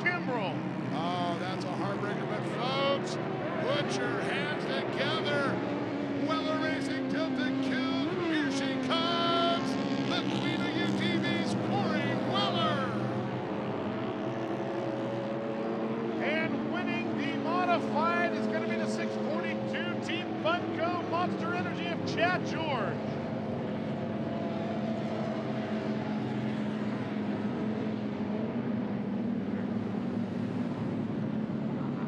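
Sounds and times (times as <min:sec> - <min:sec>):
off-road engines at high revs: 0:00.0 - 0:32.0.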